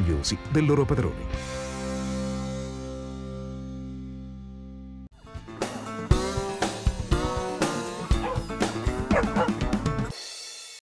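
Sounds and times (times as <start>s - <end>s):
music: 0.0s - 10.8s
dog barking and yipping: 8.1s - 9.6s.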